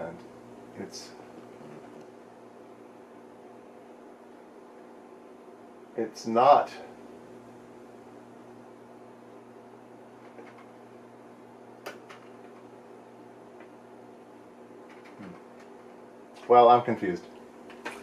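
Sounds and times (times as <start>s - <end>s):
computer humming: 0.0s - 18.0s.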